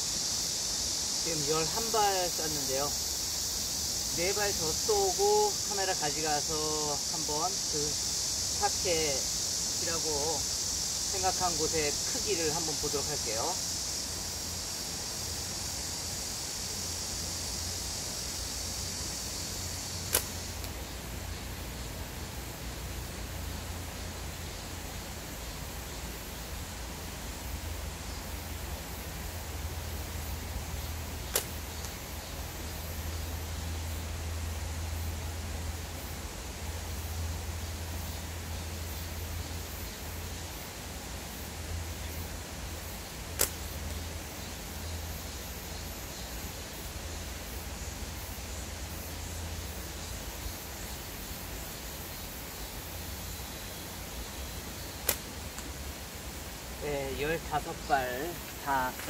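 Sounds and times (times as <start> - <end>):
insects buzzing: 0.0 - 59.0
slingshot snap: 20.0 - 20.8, 31.2 - 32.0, 43.3 - 44.0, 55.0 - 55.8.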